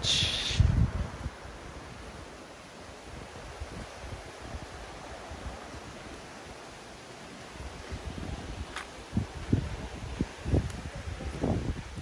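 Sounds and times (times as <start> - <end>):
wind buffeting microphone: 0.0 - 6.7, 7.4 - 12.0
leaves rustling: 0.0 - 12.0.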